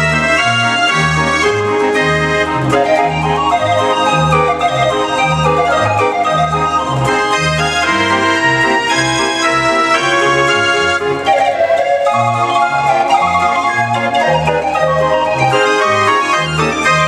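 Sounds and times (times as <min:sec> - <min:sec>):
street organ playing a tune: 0:00.0 - 0:17.0.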